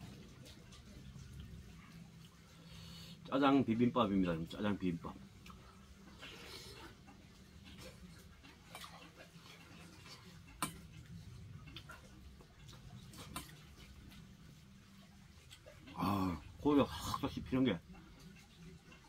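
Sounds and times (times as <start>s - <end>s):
quiet chewing: 0.0s - 3.3s, 5.2s - 19.0s.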